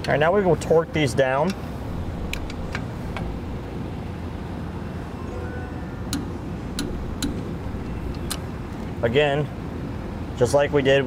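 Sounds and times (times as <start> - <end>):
steady low hum: 1.6 - 4.8, 6.7 - 9.1.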